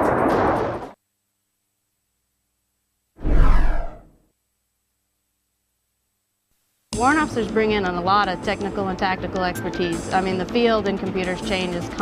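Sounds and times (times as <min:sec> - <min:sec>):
transition swoosh: 0:03.2 - 0:04.1.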